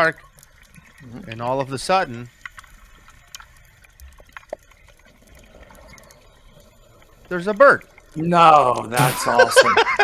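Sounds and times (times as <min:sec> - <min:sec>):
soft underwater bubbling: 0:00.0 - 0:10.0
small clicks: 0:02.1 - 0:08.9.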